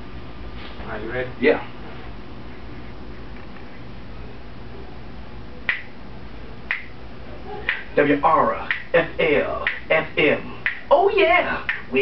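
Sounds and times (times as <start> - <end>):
finger snaps: 5.7 - 5.9, 6.7 - 6.9, 10.6 - 10.8.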